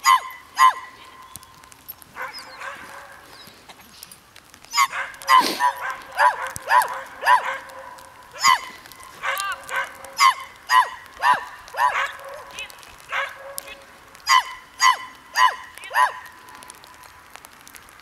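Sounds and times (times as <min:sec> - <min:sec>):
dog barking high-pitched: 0:00.0 - 0:01.0, 0:02.2 - 0:03.3, 0:04.7 - 0:16.3.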